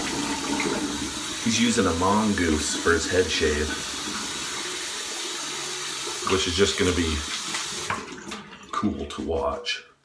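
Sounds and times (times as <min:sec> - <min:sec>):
tap water running into sink: 0:00.0 - 0:09.6.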